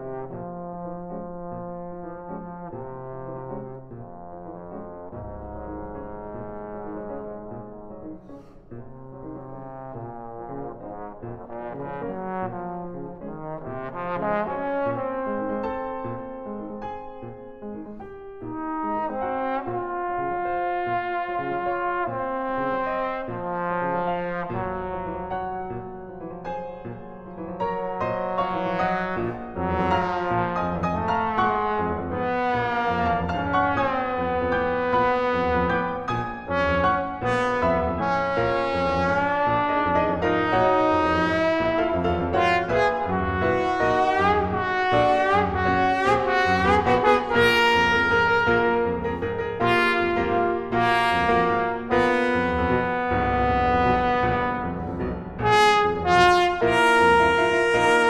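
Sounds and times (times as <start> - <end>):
piano accompaniment: 0.0 - 58.0
trombone melody: 0.0 - 58.0.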